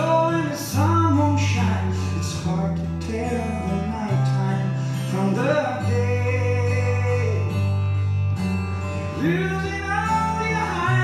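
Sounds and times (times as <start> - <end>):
acoustic guitar: 0.0 - 11.0
person singing: 9.2 - 11.0.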